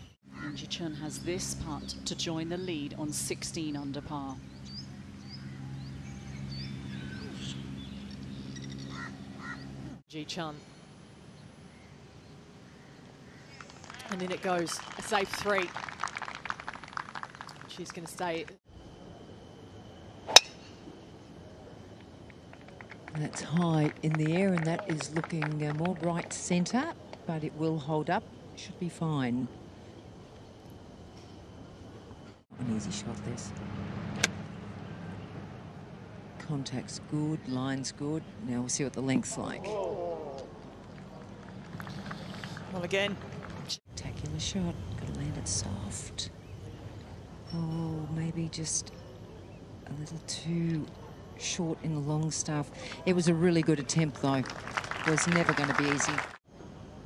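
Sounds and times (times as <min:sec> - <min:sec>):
birds chirping: 0:00.0 - 0:13.8
steady low hum: 0:00.0 - 0:15.5, 0:17.7 - 0:57.0
lower nasal bird calls: 0:04.5 - 0:09.8
golf club striking ball: 0:20.3 - 0:20.6.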